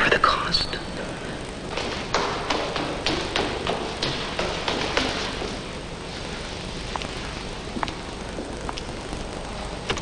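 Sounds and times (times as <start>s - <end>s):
sharp taps: 1.7s - 5.5s.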